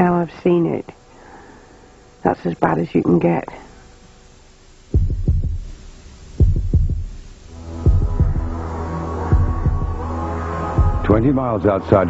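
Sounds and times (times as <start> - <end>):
deep heartbeat-like thuds: 4.9 - 10.1, 10.8 - 11.5
low droning chord: 5.0 - 12.0.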